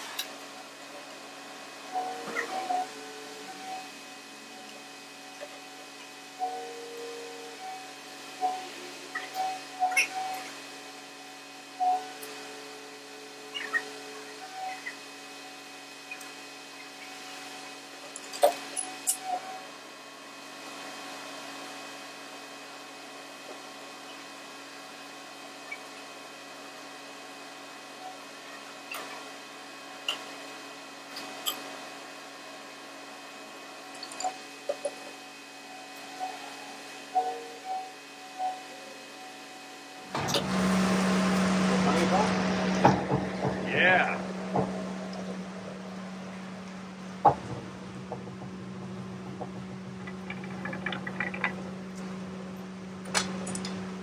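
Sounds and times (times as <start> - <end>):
steady hum: 29.8 - 54.0.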